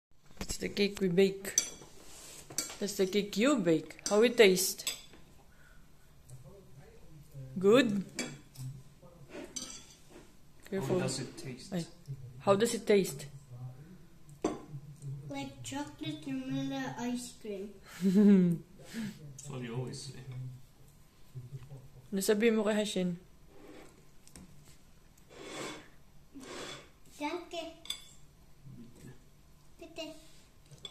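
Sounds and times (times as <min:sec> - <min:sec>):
child's voice: 0:15.3 - 0:17.8, 0:27.2 - 0:27.9, 0:29.8 - 0:30.4
slurping from a mug: 0:25.3 - 0:27.0.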